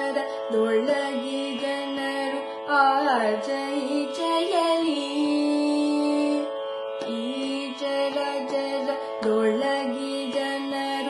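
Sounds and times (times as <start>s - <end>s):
woman singing classical music: 0.0s - 11.0s.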